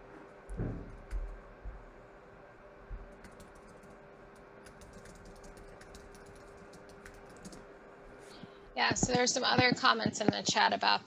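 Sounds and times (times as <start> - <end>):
steady hum: 0.0 - 11.0
typing on keyboard: 3.1 - 4.0, 4.6 - 7.6
person speaking: 8.8 - 11.0.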